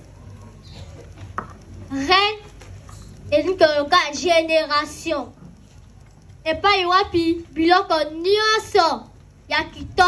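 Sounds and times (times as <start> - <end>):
public address system hum: 6.0 - 10.0.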